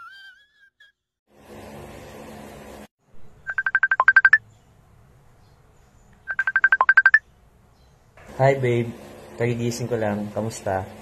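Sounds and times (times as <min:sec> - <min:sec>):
phone ringtone beeps: 0:03.5 - 0:04.4, 0:06.3 - 0:07.2.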